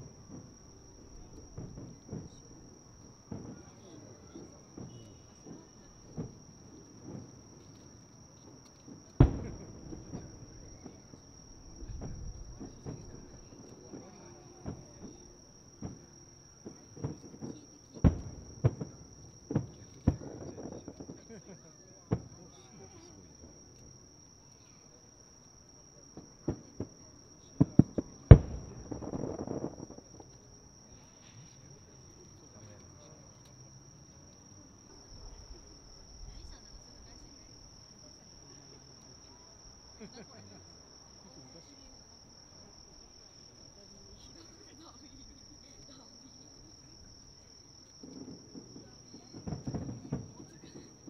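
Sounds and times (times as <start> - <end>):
firework shells bursting: 0.0 - 21.4, 26.1 - 33.7, 46.7 - 51.0.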